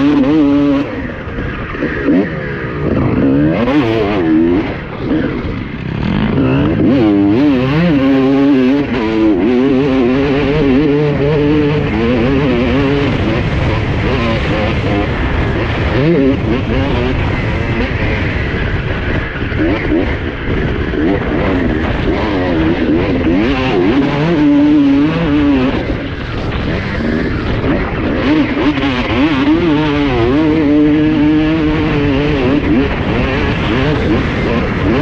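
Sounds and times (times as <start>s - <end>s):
motocross engine revving hard: 0.0s - 35.0s.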